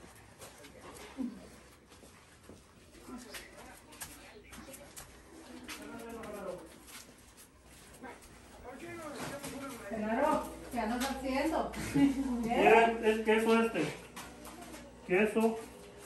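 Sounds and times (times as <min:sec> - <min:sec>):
light knocks of people moving: 0:00.0 - 0:12.6.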